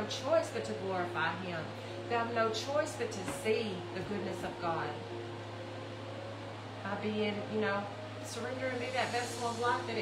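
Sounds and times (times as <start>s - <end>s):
woman speaking: 0.0s - 5.0s, 6.8s - 10.0s
steady low hum: 0.0s - 10.0s.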